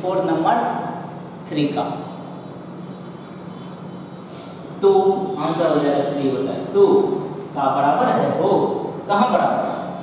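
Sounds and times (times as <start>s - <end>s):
low room hum with hiss: 0.0s - 10.0s.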